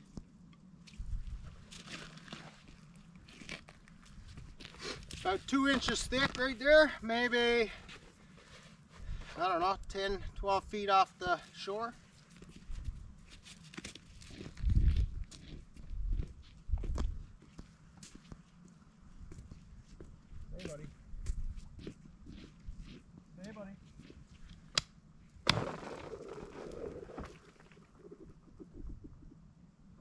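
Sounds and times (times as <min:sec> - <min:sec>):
footsteps crunching on snowy ice: 0:01.5 - 0:06.6, 0:11.2 - 0:18.3.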